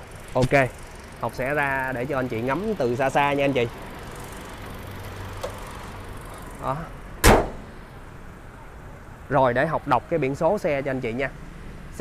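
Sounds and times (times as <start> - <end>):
car bonnet slamming shut: 7.2 - 7.8.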